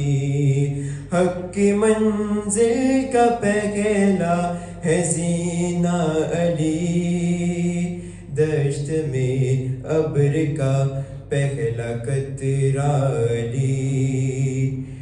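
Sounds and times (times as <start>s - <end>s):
young man chanting into microphone: 0.0s - 15.0s.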